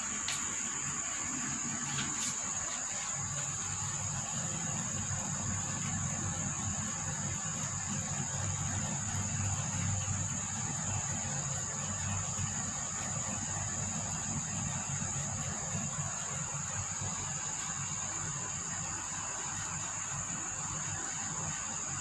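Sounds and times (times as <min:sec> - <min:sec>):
insects droning: 0:00.0 - 0:22.0.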